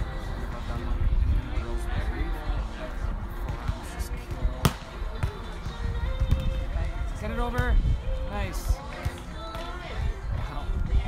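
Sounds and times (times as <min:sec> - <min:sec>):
background music: 0:00.0 - 0:11.0
voices: 0:00.0 - 0:11.0
volleyball hit by hand: 0:04.6 - 0:05.4.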